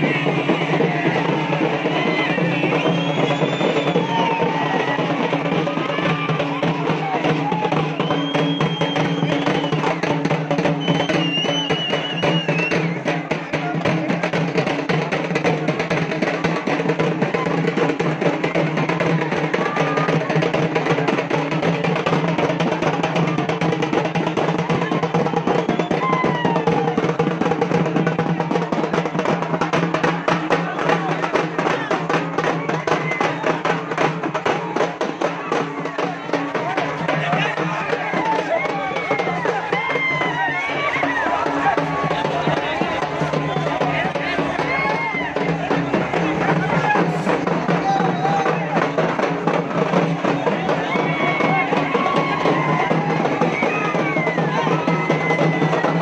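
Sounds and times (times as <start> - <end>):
crowd voices and shouts: 0.0 - 56.0
fast drumming: 0.0 - 56.0.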